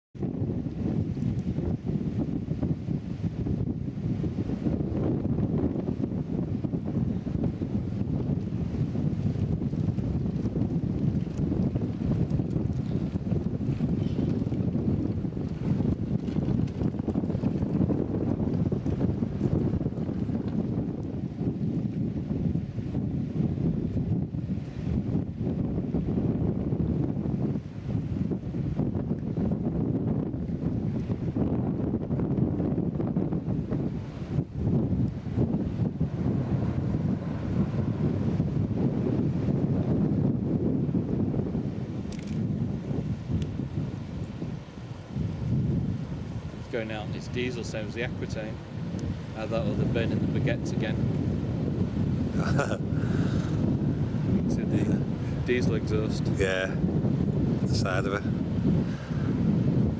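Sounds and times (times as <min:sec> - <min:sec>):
wind buffeting microphone: 0:00.1 - 0:59.9.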